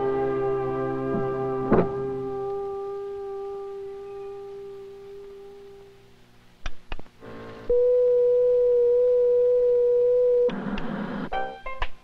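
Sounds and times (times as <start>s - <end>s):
television electronic tone: 7.2s - 11.9s.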